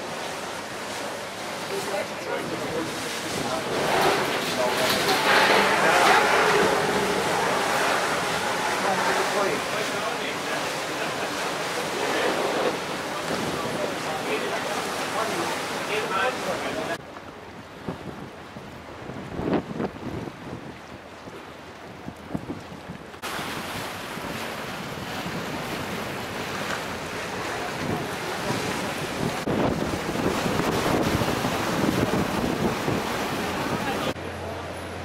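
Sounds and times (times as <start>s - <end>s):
choppy river water rushing: 0.0s - 35.0s
wind buffeting microphone: 2.3s - 14.8s, 16.8s - 34.2s.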